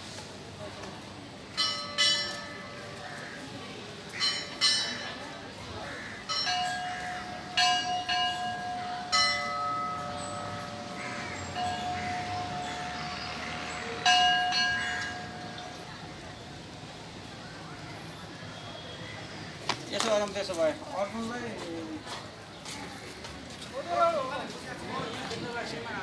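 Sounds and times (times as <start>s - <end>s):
temple bells ringing: 1.5s - 3.1s, 4.0s - 5.5s, 6.2s - 16.6s.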